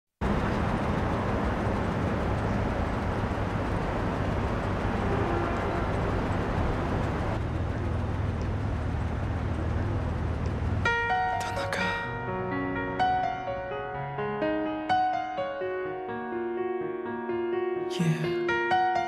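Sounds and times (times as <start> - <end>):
street noise: 0.2 - 12.2
car engine idling: 0.2 - 13.4.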